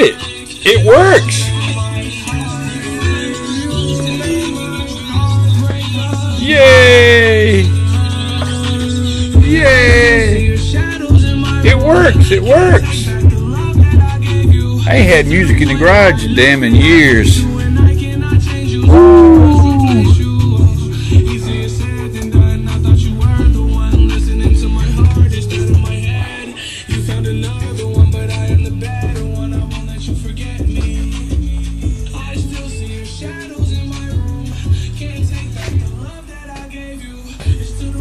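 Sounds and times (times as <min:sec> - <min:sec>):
music through stereo speakers: 0:00.0 - 0:38.0
song with heavy bass beat: 0:00.0 - 0:38.0.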